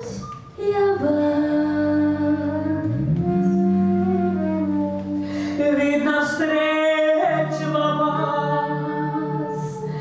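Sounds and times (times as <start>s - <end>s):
live band holding long notes: 0.0s - 10.0s
low note sliding up: 2.4s - 5.3s.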